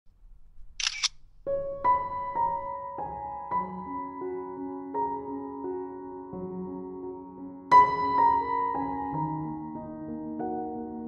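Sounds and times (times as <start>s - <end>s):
camera shutter click: 0.7s - 1.3s
piano music with held notes: 1.5s - 11.0s.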